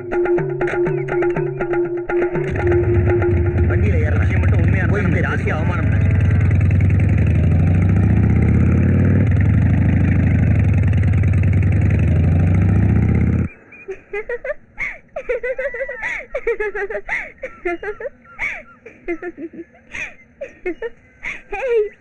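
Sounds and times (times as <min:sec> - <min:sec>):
motorcycle engine running: 0:02.1 - 0:13.6.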